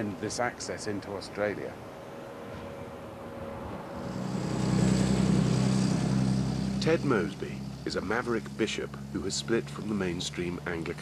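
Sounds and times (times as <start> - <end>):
diesel truck engine rumbling: 3.6 - 11.0.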